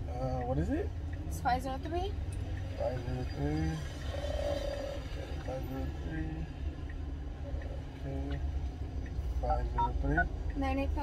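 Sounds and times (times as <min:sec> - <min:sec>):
low rumble inside a car: 0:00.0 - 0:11.0.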